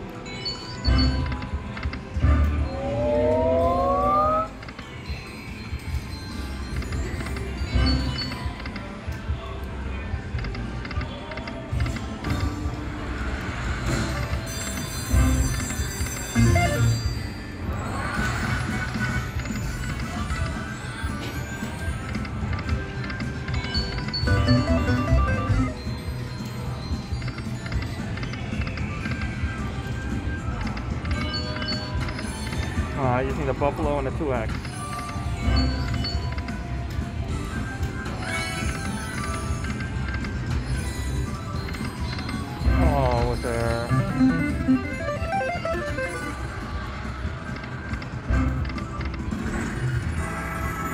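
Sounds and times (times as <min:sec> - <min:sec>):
jingly slot machine music: 0:00.0 - 0:50.9
casino background din: 0:00.1 - 0:50.9.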